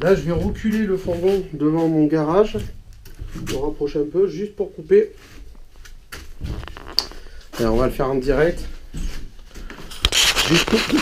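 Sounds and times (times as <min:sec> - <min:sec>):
rustling handling noise: 0:00.0 - 0:11.0.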